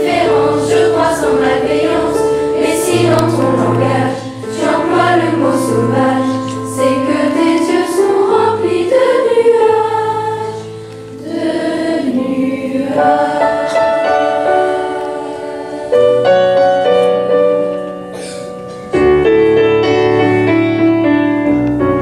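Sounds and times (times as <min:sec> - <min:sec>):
choir singing: 0:00.0 - 0:16.9.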